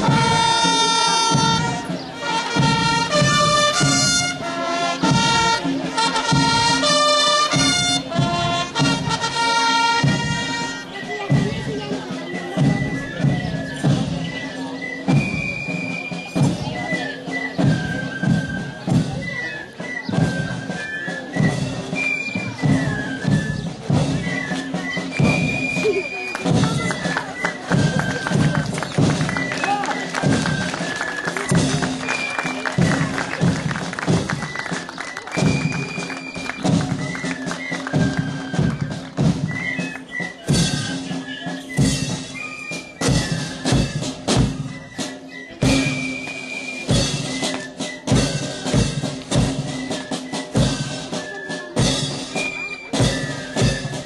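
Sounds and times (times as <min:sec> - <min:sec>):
snare and bass drums beating: 0:00.0 - 0:14.4, 0:15.0 - 0:19.4, 0:20.1 - 0:54.0
marching band playing: 0:00.0 - 0:54.0.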